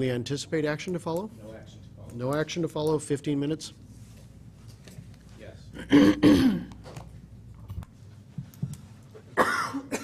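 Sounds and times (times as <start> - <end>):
person coughing: 5.8 - 6.7, 9.4 - 10.0.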